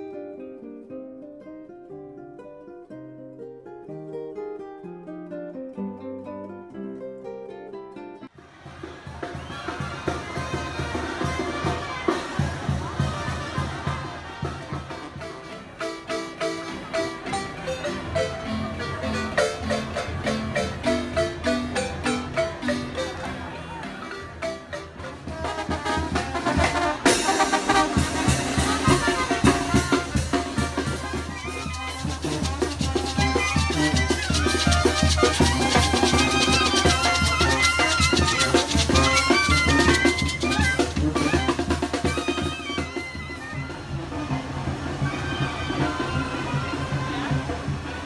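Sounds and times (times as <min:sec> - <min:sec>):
brass band playing: 0:08.5 - 0:48.0.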